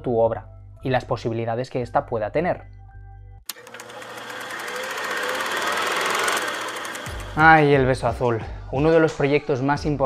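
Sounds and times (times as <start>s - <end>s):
fast mechanical clatter: 3.5s - 7.5s.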